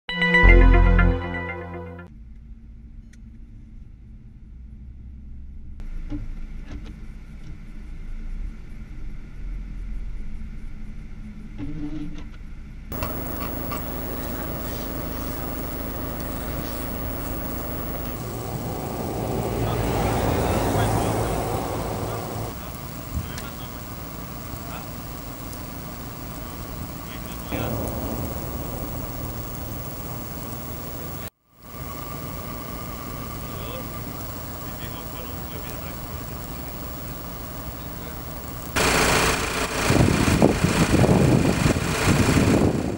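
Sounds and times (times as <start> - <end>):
loud rushing noise: 12.9 - 22.8, 27.5 - 31.3
vehicle passing: 12.9 - 24.9, 27.2 - 31.3
vehicle engines rumbling: 12.9 - 41.4.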